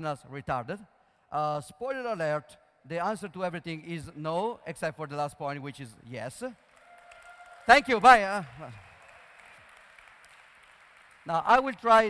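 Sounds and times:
faint audience applause: 6.6 - 12.0.

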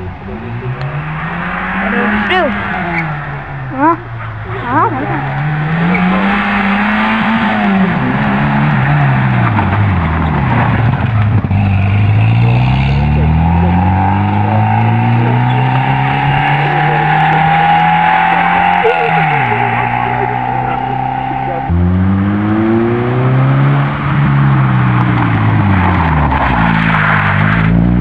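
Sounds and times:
car engine revving: 0.0 - 28.0.

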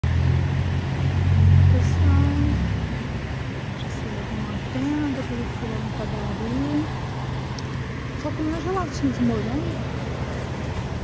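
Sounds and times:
truck engine rumbling: 0.0 - 11.0.

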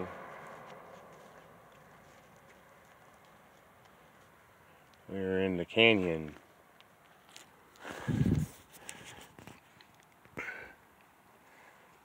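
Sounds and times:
handling clicks and scuffs: 0.4 - 5.0.

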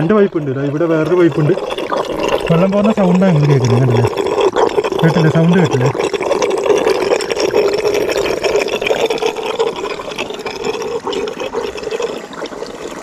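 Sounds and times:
water trickling over stones: 0.0 - 13.0.

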